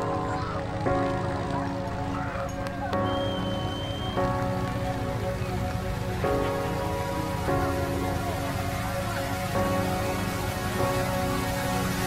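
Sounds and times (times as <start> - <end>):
music of held chords: 0.0 - 12.0
steady noisy hiss: 0.0 - 12.0.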